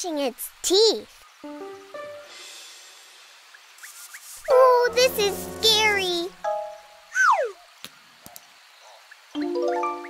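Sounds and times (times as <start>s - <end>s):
falling whistle tone: 7.1s - 7.6s.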